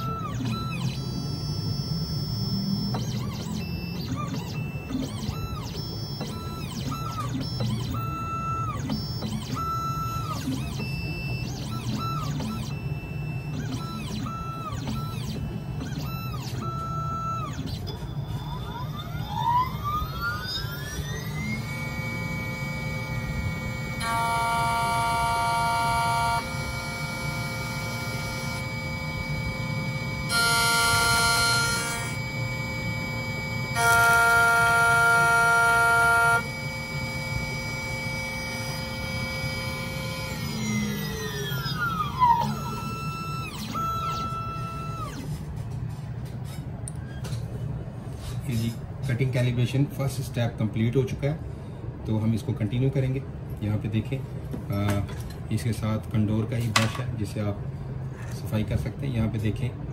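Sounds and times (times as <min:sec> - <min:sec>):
short motor whirs: 0:00.0 - 0:45.5
key cutting machine motor whine: 0:00.0 - 0:47.4.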